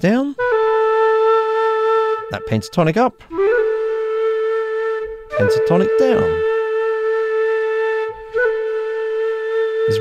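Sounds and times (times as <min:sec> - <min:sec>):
bamboo flute steady note: 0:00.4 - 0:10.0.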